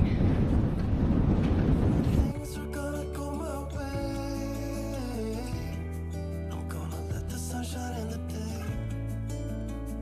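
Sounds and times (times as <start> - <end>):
wind buffeting microphone: 0.0 - 2.6.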